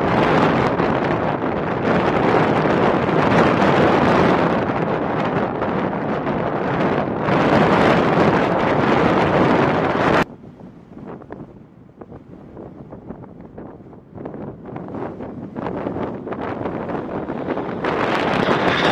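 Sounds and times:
jet engines on takeoff roll: 0.0 - 18.9
wind buffeting microphone: 0.0 - 18.9
jet engine roar: 14.0 - 18.9.

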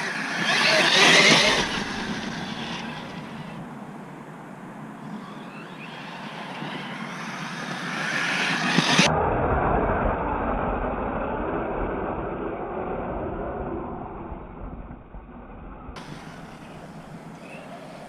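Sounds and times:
rc car electric motor whine: 0.0 - 3.7, 5.0 - 9.1.

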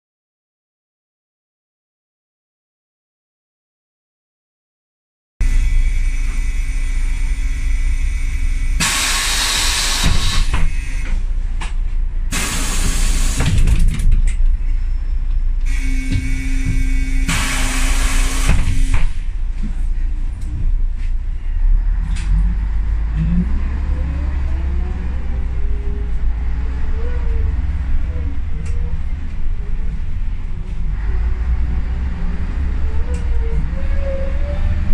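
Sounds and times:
gearbox whine: 5.4 - 11.2, 12.5 - 19.2
bus diesel engine rumbling: 5.4 - 34.9
compressed air hissing: 8.8 - 11.0, 12.3 - 13.5, 15.7 - 19.0.

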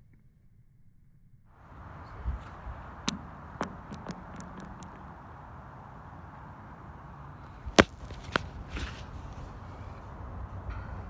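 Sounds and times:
stones skittering on lake ice: 7.7 - 9.5.

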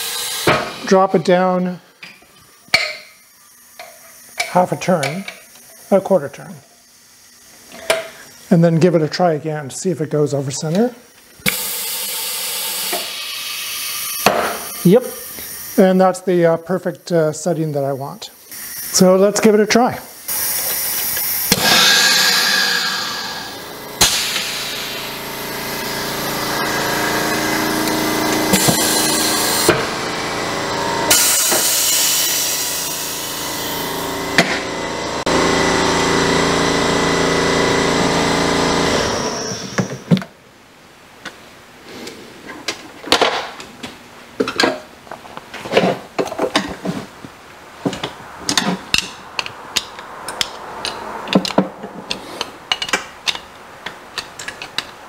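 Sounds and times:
loud hiss of air: 0.0 - 0.9, 11.4 - 16.5, 19.9 - 29.8, 31.1 - 34.1
machine hum: 3.1 - 40.1.

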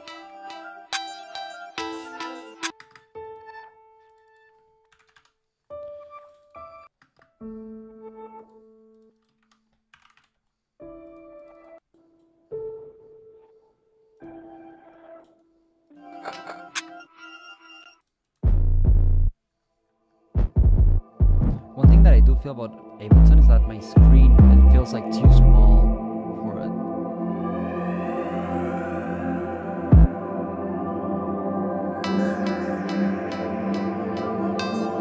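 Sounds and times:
electronic beat snippets: 20.4 - 26.0, 29.9 - 30.2, 32.0 - 35.0
piano-like chords: 21.6 - 35.0.

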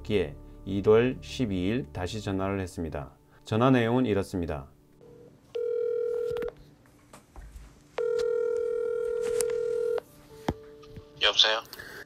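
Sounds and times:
telephone ringback tone: 5.0 - 6.6, 8.0 - 10.0
phone line click: 5.5 - 6.6, 8.0 - 10.0.

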